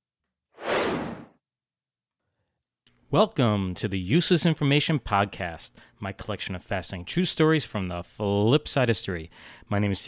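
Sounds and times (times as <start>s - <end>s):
whoosh: 0.6s - 1.3s.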